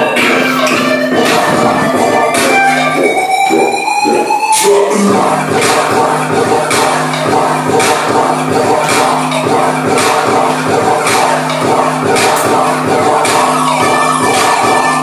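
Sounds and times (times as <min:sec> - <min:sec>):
dance music with bass line: 0:00.0 - 0:15.0.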